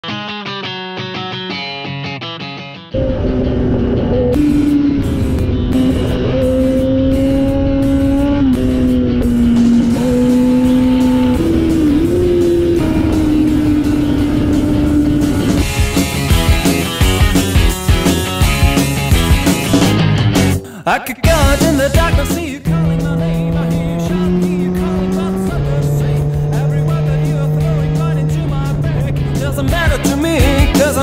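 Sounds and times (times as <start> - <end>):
motorcycle engine at high revs: 3.0 - 17.0, 22.6 - 29.8
road noise rushing: 3.0 - 20.2, 22.6 - 31.0.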